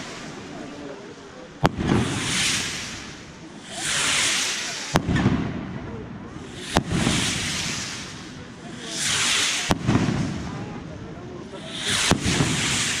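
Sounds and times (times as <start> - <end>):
rockets hissing: 0.0 - 13.0
aerial firework shells bursting: 1.6 - 10.8, 11.5 - 13.0.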